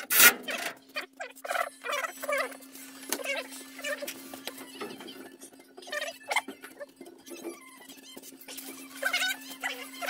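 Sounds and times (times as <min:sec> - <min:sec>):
sped-up tool noises: 0:00.0 - 0:00.8
sped-up squeaky voices: 0:00.4 - 0:10.0.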